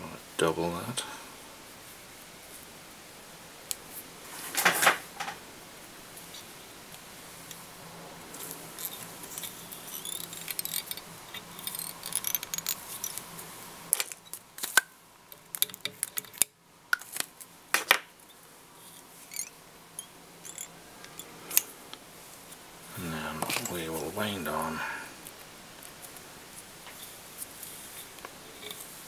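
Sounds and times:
soft rustling and scraping: 3.8 - 5.4, 8.2 - 14.4, 18.2 - 29.0.

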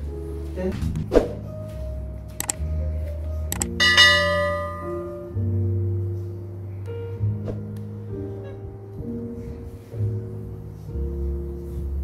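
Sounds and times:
background music: 0.0 - 12.0
double mouse click: 2.4 - 2.6, 3.5 - 3.7
bright bell chime: 3.6 - 5.3.

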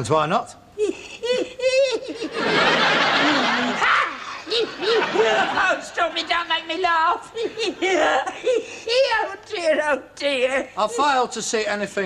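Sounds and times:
man laughing: 0.8 - 5.7
studio audience laughing: 1.9 - 6.4.

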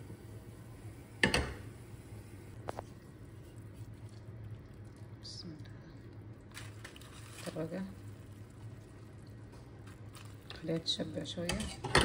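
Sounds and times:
low steady hum: 0.0 - 12.0
wet squish of stew poured: 2.7 - 10.8.

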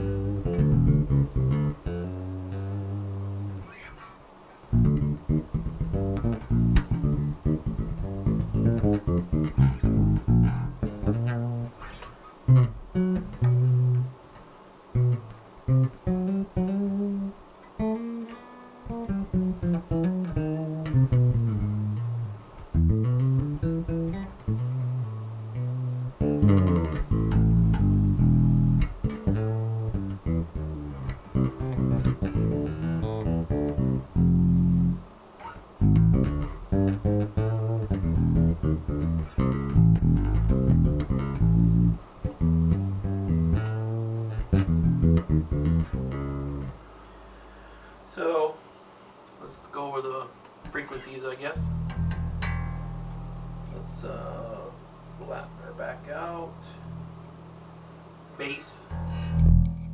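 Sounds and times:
electric bass plucked notes: 0.0 - 4.0, 4.7 - 14.2, 14.9 - 46.9, 51.6 - 57.4, 58.9 - 59.9.

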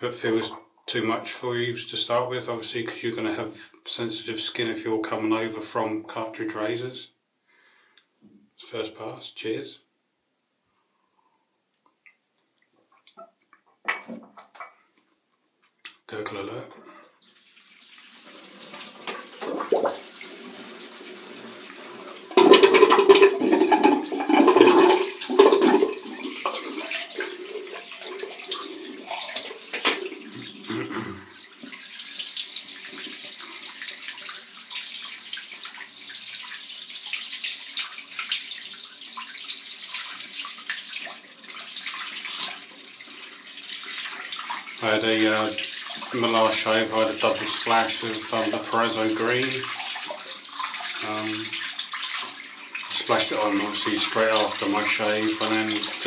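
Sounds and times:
running tap water: 17.2 - 56.0
water splashing on face: 22.3 - 34.8.

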